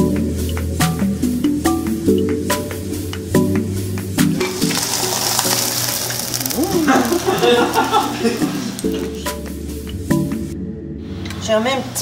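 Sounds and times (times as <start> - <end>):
background music: 0.0 - 12.0
meat sizzling in a pan: 4.4 - 9.0.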